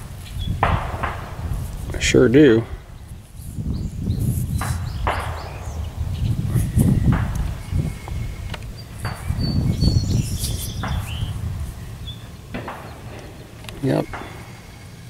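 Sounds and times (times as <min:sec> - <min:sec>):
handling noise on microphone: 0:00.0 - 0:15.0
wind rumble on microphone: 0:00.0 - 0:15.0.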